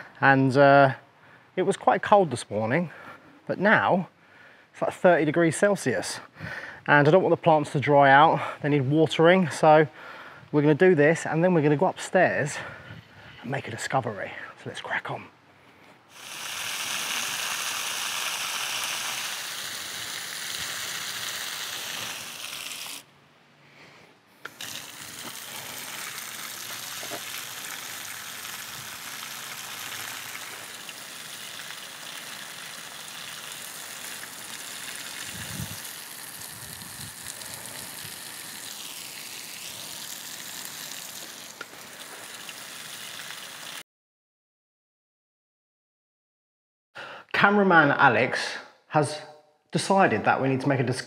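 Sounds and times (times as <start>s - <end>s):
hose nozzle spraying water: 16.1s - 23.1s, 24.4s - 43.8s.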